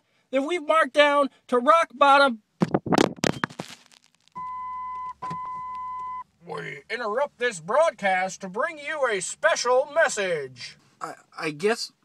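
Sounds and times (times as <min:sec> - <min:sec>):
noisy crackling burst: 0:02.9 - 0:04.4
steady high electronic beep: 0:04.4 - 0:06.2.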